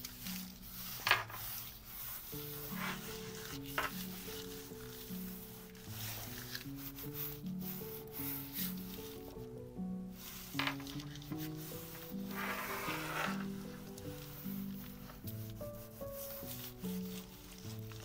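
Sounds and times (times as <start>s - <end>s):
quiet background music: 0.0s - 18.0s
tissue paper rustling: 0.0s - 18.0s.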